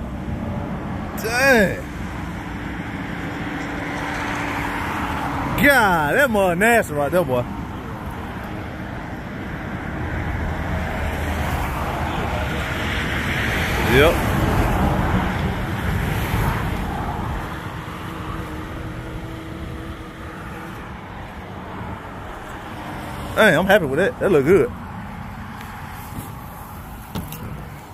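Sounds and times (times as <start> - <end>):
passing vehicle: 0.0 - 27.9.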